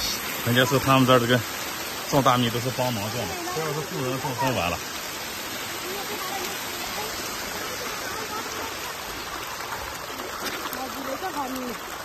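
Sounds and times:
flowing water rushing: 0.0 - 12.0.

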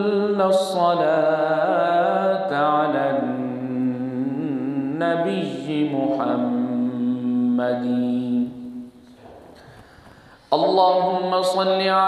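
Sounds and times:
man chanting melodically: 0.0 - 8.9, 10.5 - 12.0.

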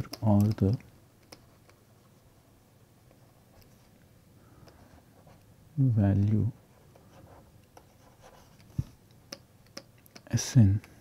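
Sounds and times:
stylus scratching on tablet screen: 6.8 - 8.8.

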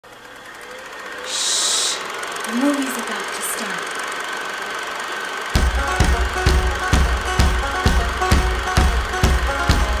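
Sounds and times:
person shushing: 1.3 - 2.1.

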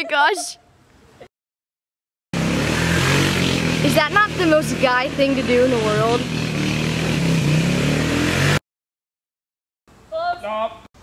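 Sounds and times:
small engine revving: 2.4 - 8.6.

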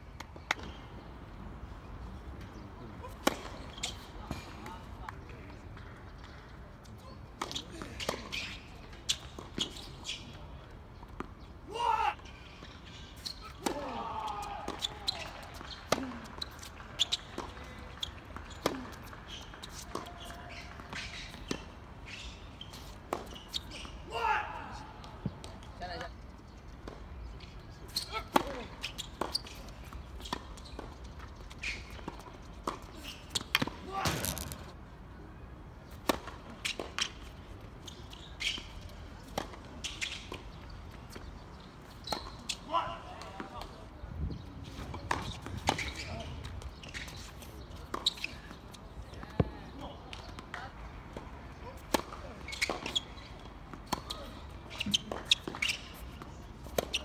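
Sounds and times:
tennis ball struck by rackets: 33.4 - 34.9
ball bouncing on court: 33.6 - 34.8
short shouts: 33.8 - 34.6.

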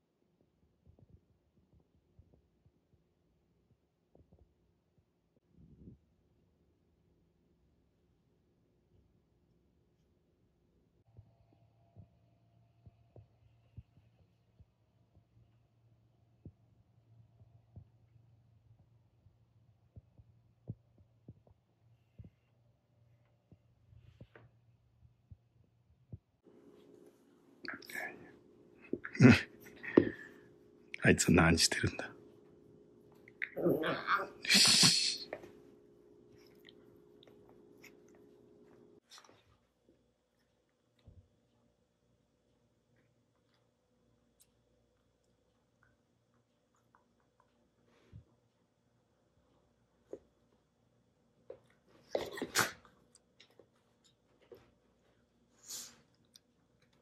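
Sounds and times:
low steady hum: 0.0 - 57.0
person whispering: 27.6 - 28.3, 33.4 - 35.4.

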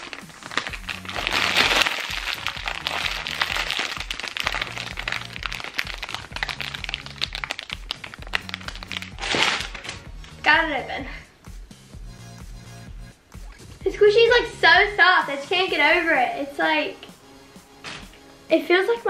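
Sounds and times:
plastic packaging crinkling: 0.0 - 10.0
background music with bass beat: 0.3 - 16.2.

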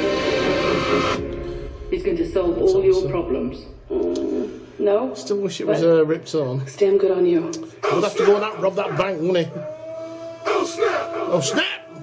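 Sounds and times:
sustained dense trailer chord: 0.0 - 5.4.

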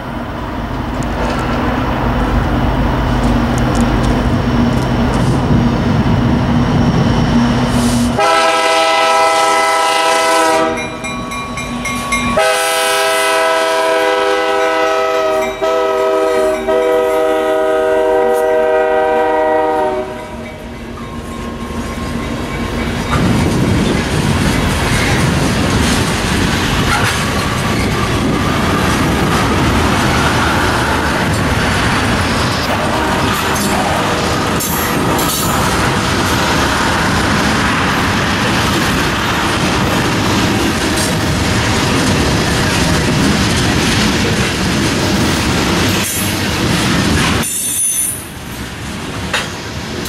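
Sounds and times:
diesel locomotive engines: 0.0 - 50.0
train wheels on rails: 0.0 - 50.0
multi-note train air horn: 7.8 - 10.8, 12.4 - 20.4, 32.7 - 34.0.

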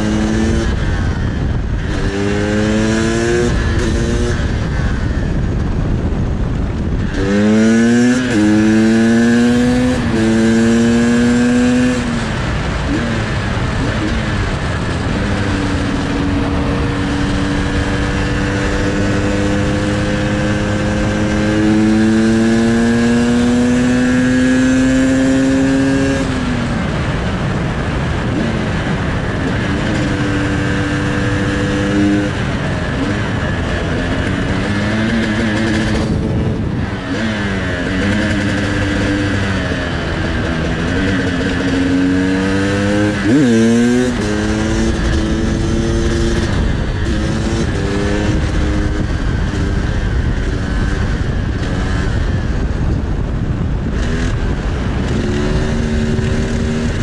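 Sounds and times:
motorcycle engine revving: 0.0 - 57.0
wind noise on microphone: 0.0 - 57.0.

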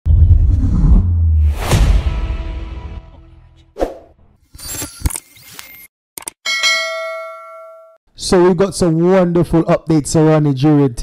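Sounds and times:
bell ding: 6.4 - 8.0.

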